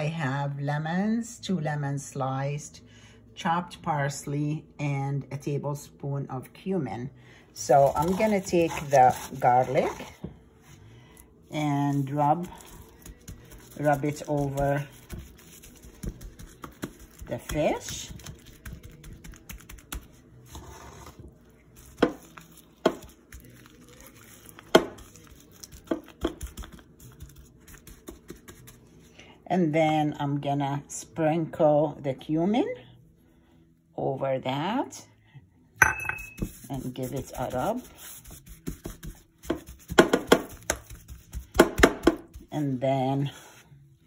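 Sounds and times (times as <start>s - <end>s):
sharp knocks on baking sheet: 39.5s - 40.9s, 41.5s - 42.3s.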